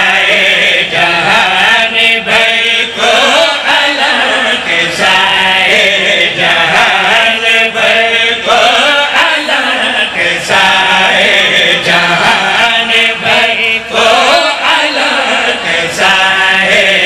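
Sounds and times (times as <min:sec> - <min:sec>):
men chanting through loudspeakers: 0:00.0 - 0:17.0.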